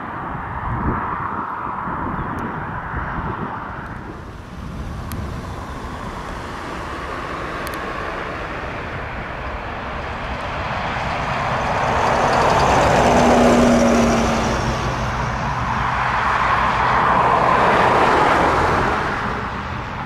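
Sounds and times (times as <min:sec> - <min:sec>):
jet engines rushing: 0:00.1 - 0:20.0.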